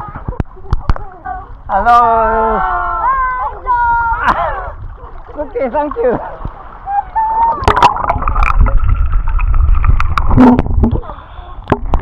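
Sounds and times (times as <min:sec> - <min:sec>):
low underwater rumble: 0:00.0 - 0:12.0
water splashing and gurgling: 0:00.0 - 0:12.0.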